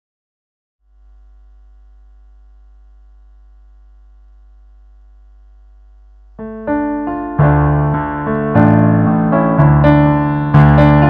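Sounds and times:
faint held tones: 0.9s - 6.9s
steady low hum: 0.9s - 7.9s
piano chords: 6.3s - 11.0s.

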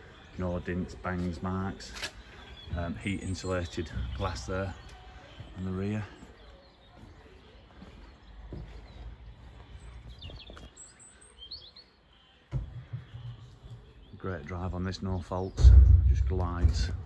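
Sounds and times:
low bump: 15.5s - 17.0s
low rumble: 15.6s - 17.0s.

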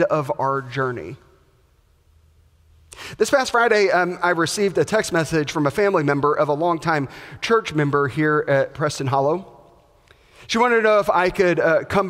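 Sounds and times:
man speaking: 0.0s - 1.3s, 3.1s - 9.5s, 10.4s - 12.0s.

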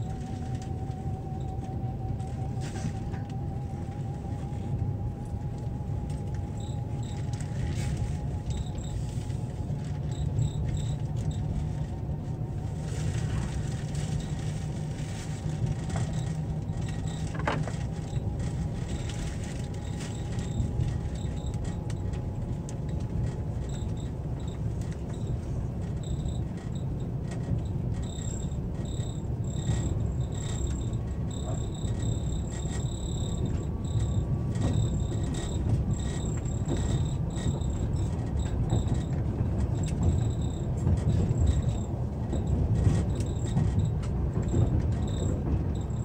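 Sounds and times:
train rumbling: 0.0s - 46.0s.

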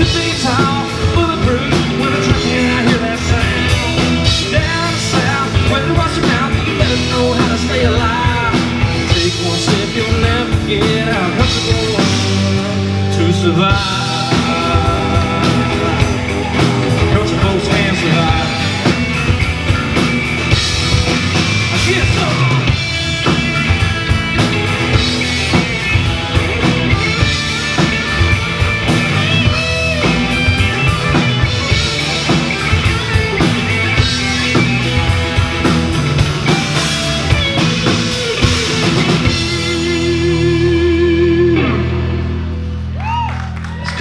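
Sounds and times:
bass guitar: 0.0s - 44.0s
drum kit: 0.0s - 44.0s
electric guitar lead: 0.0s - 44.0s.

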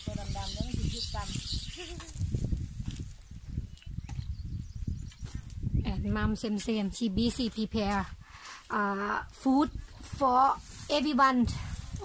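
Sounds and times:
people talking: 0.0s - 2.2s, 5.8s - 8.1s, 8.7s - 12.0s.

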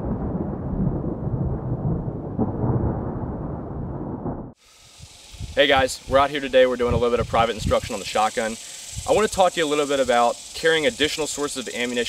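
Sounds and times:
low thunder-like rumble: 0.0s - 4.6s.

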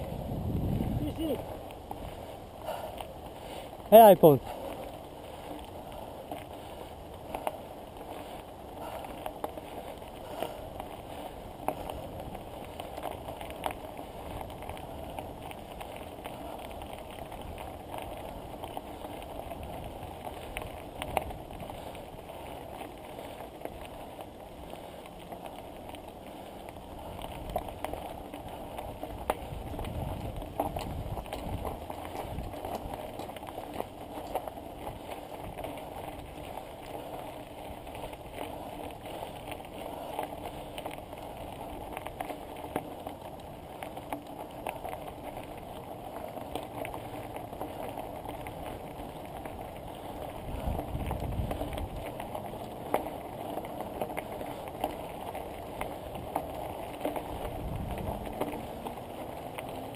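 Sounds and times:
bicycle tyres on gravel: 0.0s - 59.9s
bike rattling clicks: 4.7s - 59.9s.

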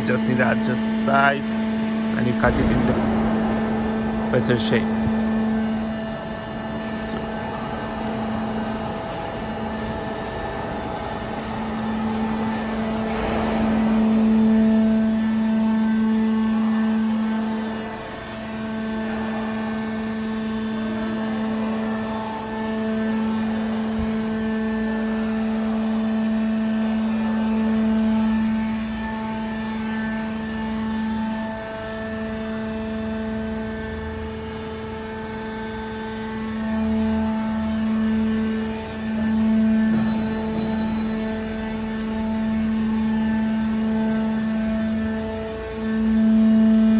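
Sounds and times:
noisy rush: 0.0s - 46.9s
roll forming machine humming: 0.0s - 46.9s.

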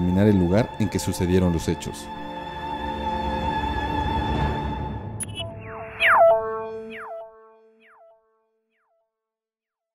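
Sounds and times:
synthesized tone gliding down: 5.2s - 8.7s.

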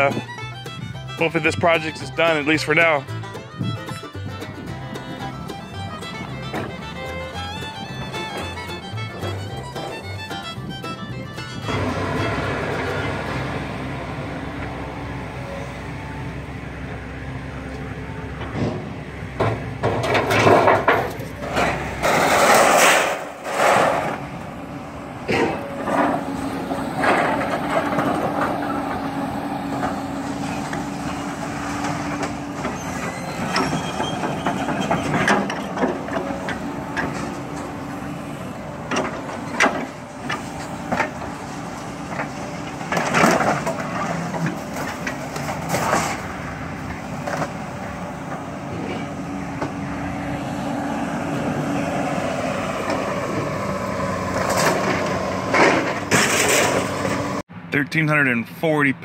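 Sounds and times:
scrap metal clanks and crashes: 0.0s - 13.8s, 18.3s - 50.2s, 51.3s - 57.4s
diesel engine running: 0.0s - 58.6s
hydraulic whine: 3.1s - 57.4s.

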